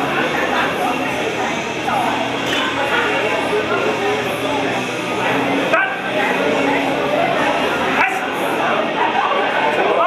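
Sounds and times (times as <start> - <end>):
people shouting and yelling: 5.4 - 10.0.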